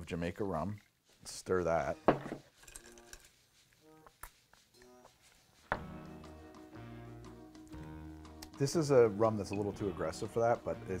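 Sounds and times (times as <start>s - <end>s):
music: 1.2s - 11.0s
glass and ice clinking: 2.1s - 3.2s.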